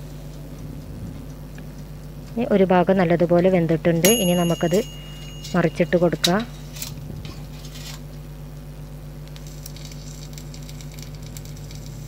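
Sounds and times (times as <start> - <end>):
faint fine crackle: 9.2 - 12.0.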